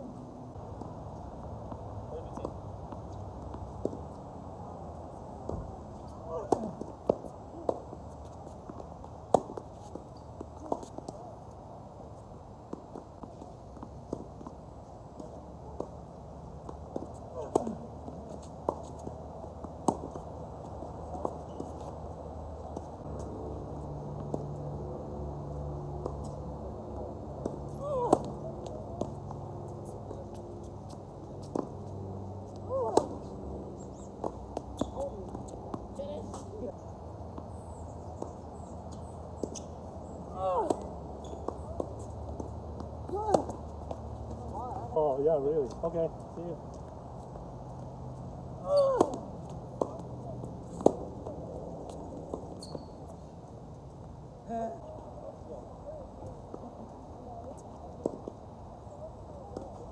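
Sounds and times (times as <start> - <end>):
tennis ball bouncing on court: 1.7 - 4.3, 5.4 - 11.2, 15.2 - 24.8, 27.3 - 36.6, 37.4 - 44.9, 46.7 - 52.9, 57.5 - 58.3.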